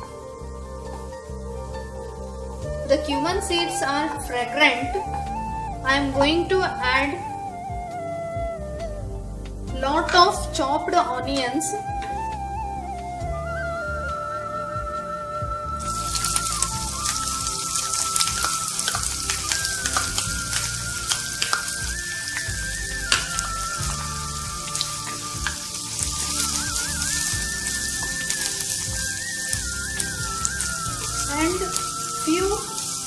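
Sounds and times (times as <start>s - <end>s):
soft instrumental melody: 0.0s - 33.0s
onions sizzling in hot oil: 15.8s - 33.0s.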